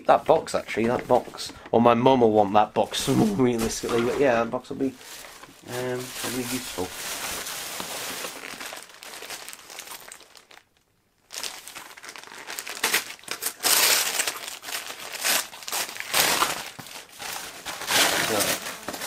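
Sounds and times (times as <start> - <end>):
wrapping paper tearing and crumpling: 4.9 - 19.0.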